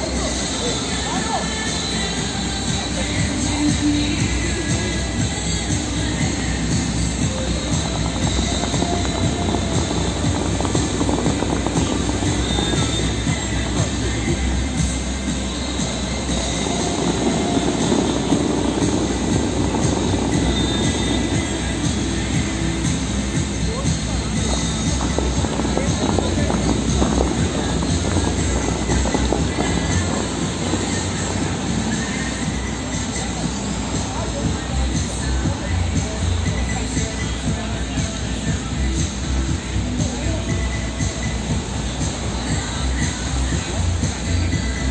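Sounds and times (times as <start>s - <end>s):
fountain water jets rushing: 0.0s - 44.9s
music playing: 0.0s - 44.9s
people's voices: 0.0s - 44.9s.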